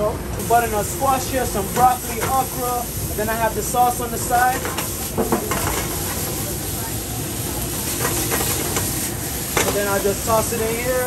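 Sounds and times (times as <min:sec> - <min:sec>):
vegetables sizzling in a wok: 0:00.4 - 0:11.0.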